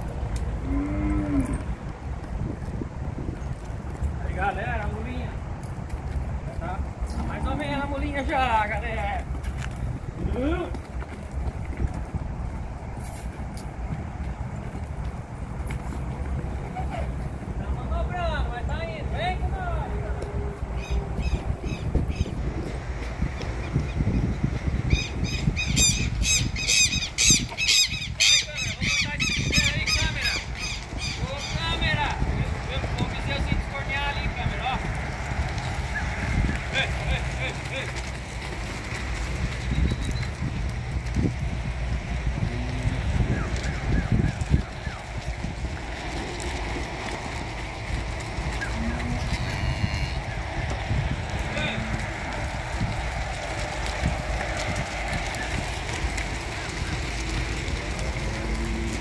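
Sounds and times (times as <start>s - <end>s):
wind rumble on microphone: 0.0s - 59.0s
shrill repeated bird calls: 24.9s - 31.8s.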